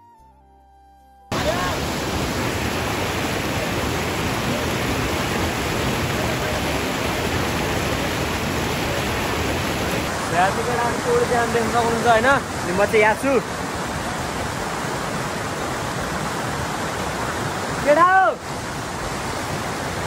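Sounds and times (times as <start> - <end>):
water rushing over rocks: 1.3 - 20.0.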